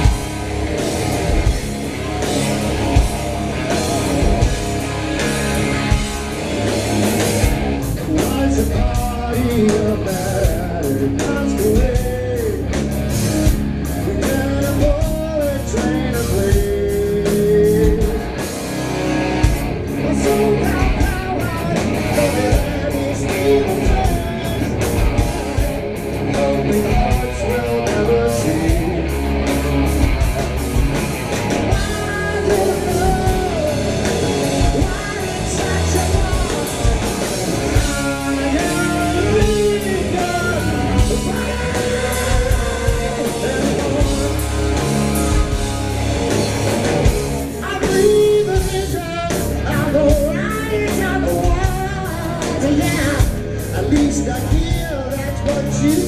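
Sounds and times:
bass guitar: 0.0s - 56.0s
distorted electric guitar: 0.0s - 56.0s
steady drum beat: 0.0s - 56.0s.

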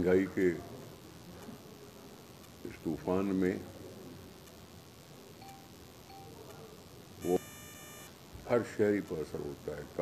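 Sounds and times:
low room noise: 0.0s - 10.0s
faint short beeps: 5.4s - 6.4s, 7.2s - 8.2s
high electronic chime: 7.2s - 8.1s.

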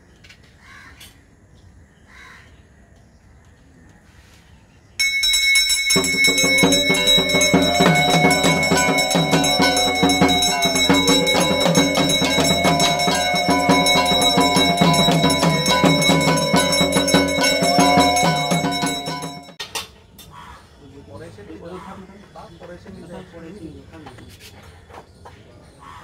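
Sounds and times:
bells ringing rapidly: 5.0s - 19.6s.

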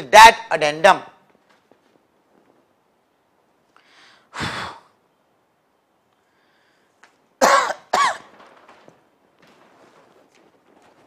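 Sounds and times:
man coughing: 7.4s - 8.3s.

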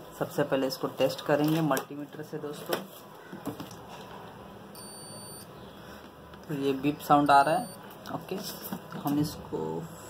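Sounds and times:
multimeter high beep: 4.7s - 5.5s, 7.3s - 7.9s.

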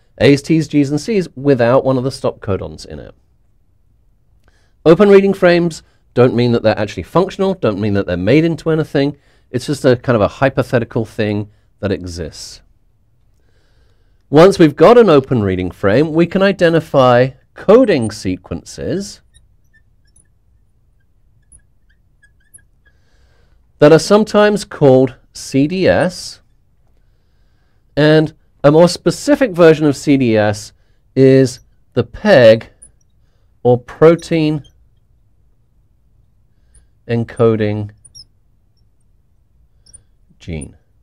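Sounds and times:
marker squeaking on glass: 17.8s - 23.5s, 31.3s - 40.9s.

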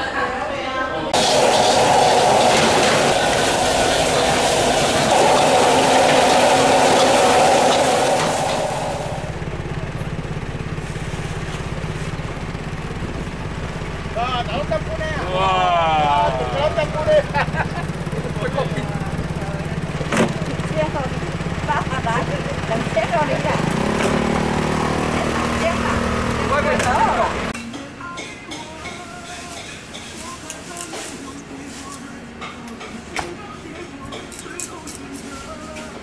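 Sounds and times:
tap running: 1.2s - 9.4s
gas burner rushing: 1.2s - 12.6s, 15.9s - 27.6s
boat engine idling: 1.2s - 27.6s
voices: 14.1s - 36.0s.

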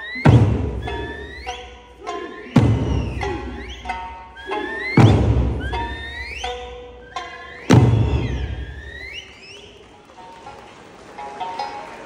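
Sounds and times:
big drum stroke ringing: 0.0s - 9.1s
high sliding whistles: 0.0s - 9.9s.

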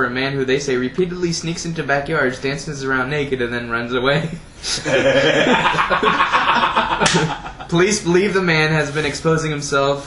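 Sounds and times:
men laughing loudly: 4.8s - 7.8s.

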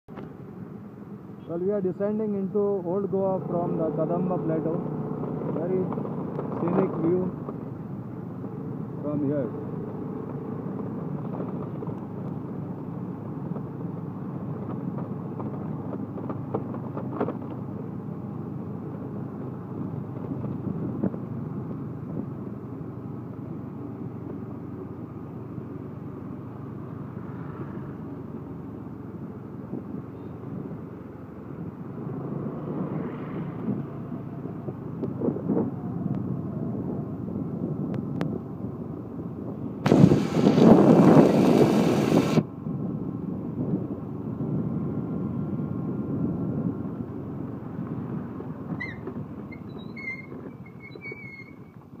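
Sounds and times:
vehicle road noise: 0.0s - 52.0s
loud rushing noise: 39.8s - 42.5s.

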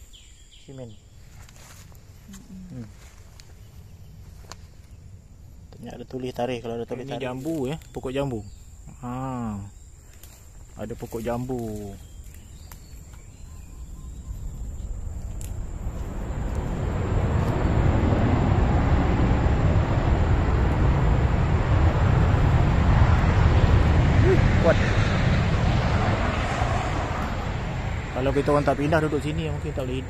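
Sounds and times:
jet airliner roaring overhead: 13.5s - 30.0s.

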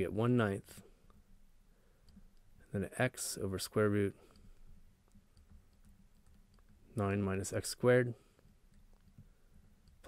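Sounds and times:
stylus clicks: 4.2s - 7.2s.

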